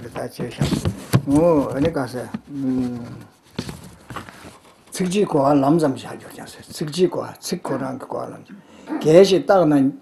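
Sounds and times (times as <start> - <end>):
papers and folder handled on table: 0.0 - 5.4.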